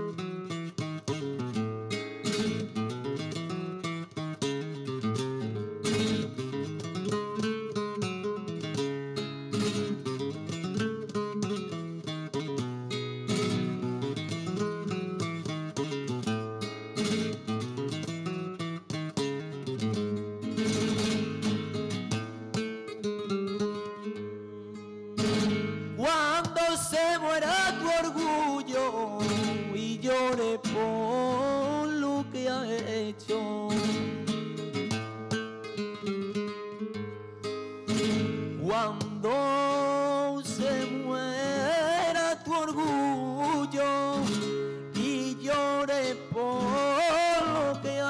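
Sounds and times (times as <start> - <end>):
flamenco acoustic guitar: 0.0 - 48.0.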